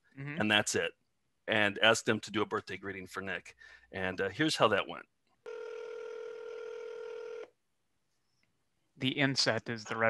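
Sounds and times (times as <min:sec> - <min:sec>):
telephone ringback tone: 0:05.5 - 0:07.4.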